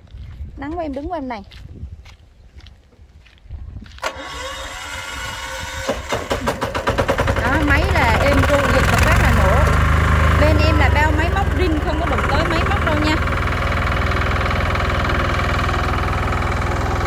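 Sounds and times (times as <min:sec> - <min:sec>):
diesel engine starting and running: 0:04.0 - 0:17.0.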